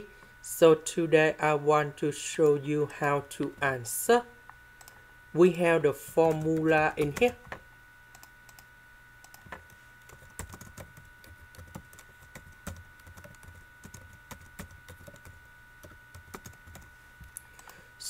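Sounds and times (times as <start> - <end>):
keyboard typing: 6.2 - 8.6, 9.2 - 16.9.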